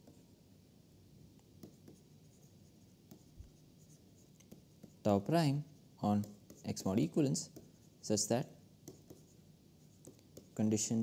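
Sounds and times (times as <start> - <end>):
stylus tapping and scratching on screen: 1.4 - 8.2, 8.8 - 11.0.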